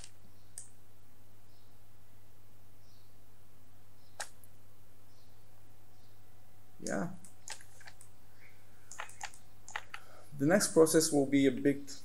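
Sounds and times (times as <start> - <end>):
computer mouse clicks: 0.0 - 0.7, 4.2 - 4.4, 8.9 - 10.1
low steady hum: 0.0 - 12.0.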